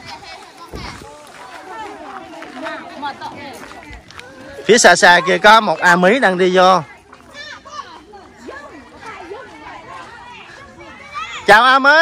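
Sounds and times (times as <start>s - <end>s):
children talking and calling: 0.0s - 12.0s.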